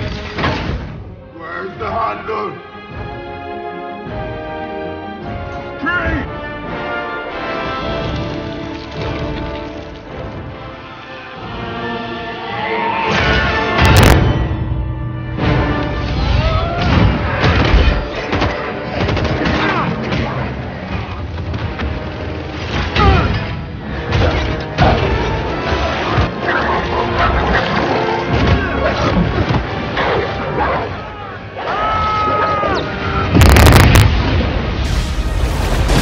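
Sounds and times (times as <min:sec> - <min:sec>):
orchestral score: 0:00.0 - 0:36.0
booms and crashes: 0:13.7 - 0:14.7, 0:33.2 - 0:36.0
very loud burst: 0:33.3 - 0:36.0.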